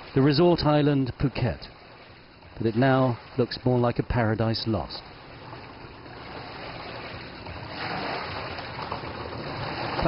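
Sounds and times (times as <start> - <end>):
water washing: 5.2 - 10.0.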